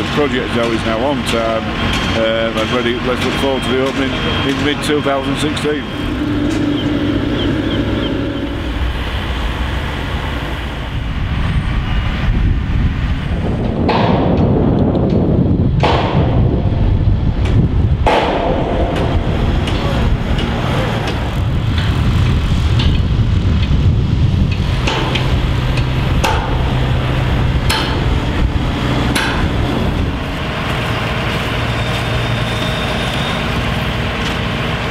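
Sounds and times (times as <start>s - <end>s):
sharp metallic knocks and clanks: 0.0s - 9.2s, 13.6s - 34.4s
machinery engines rumbling: 0.0s - 34.9s.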